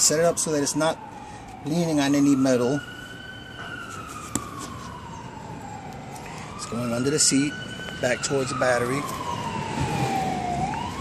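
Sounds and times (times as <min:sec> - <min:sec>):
siren wailing: 0:00.0 - 0:11.0.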